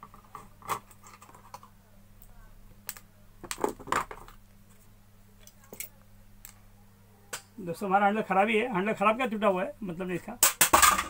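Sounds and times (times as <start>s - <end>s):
plastic parts clicking and knocking: 2.8s - 4.4s.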